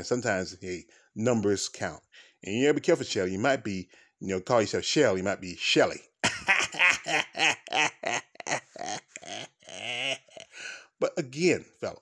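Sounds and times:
man laughing: 6.2s - 10.8s.

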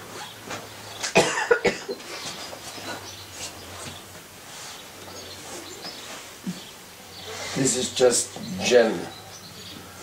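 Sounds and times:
person coughing: 1.2s - 2.0s.

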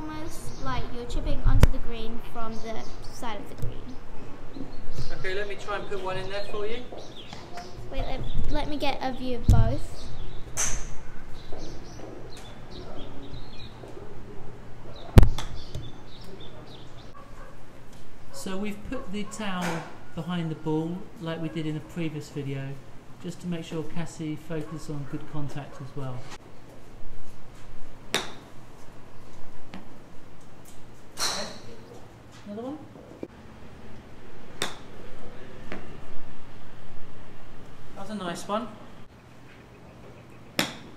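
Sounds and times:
small birds chirping: 0.0s - 19.5s, 39.0s - 40.9s
golf club striking ball: 10.6s - 11.0s, 28.1s - 28.5s, 31.2s - 31.6s, 34.5s - 35.0s, 40.6s - 40.9s.

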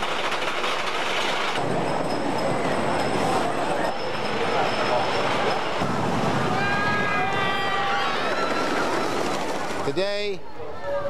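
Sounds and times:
roller coaster rumbling on wooden track: 0.0s - 10.0s
riders screaming: 6.3s - 9.9s.

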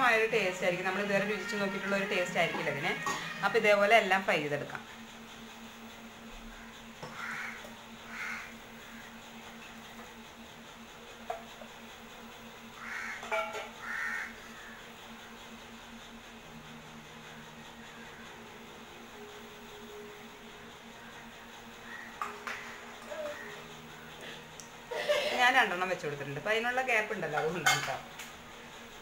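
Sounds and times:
bird calls: 21.0s - 24.2s.

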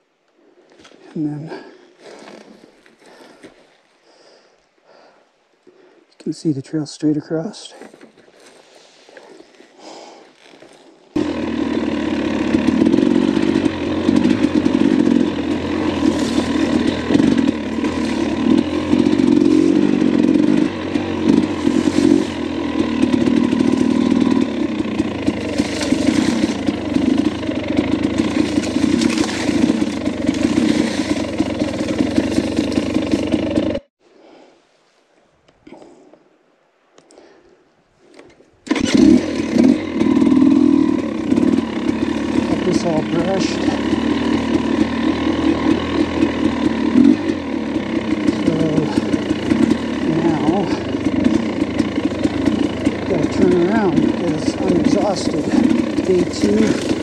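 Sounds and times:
dirt bike engine running: 10.4s - 33.9s, 38.7s - 57.0s.

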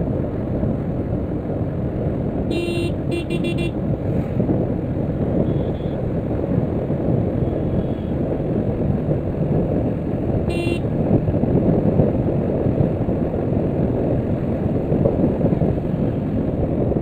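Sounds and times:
wind rush: 0.0s - 17.0s
motorcycle engine: 1.8s - 6.7s, 10.4s - 11.0s
short high horn toot: 2.5s - 3.7s, 10.5s - 10.8s.

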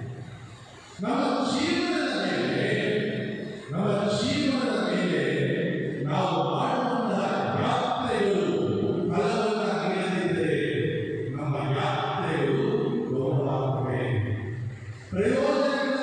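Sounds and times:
person chanting: 1.0s - 14.3s, 15.2s - 16.0s.

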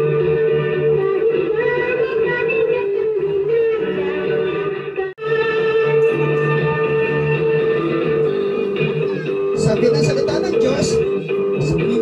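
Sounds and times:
musical accompaniment: 0.0s - 12.0s
person singing long notes: 0.4s - 9.6s.

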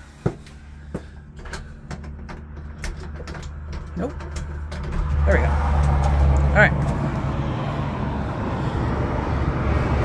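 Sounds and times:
steady low rumble: 0.0s - 10.0s
light ticks and knocks: 0.3s - 5.2s.

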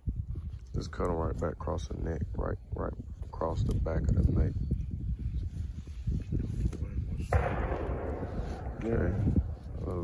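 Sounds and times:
distant gunshot: 7.3s - 10.0s.

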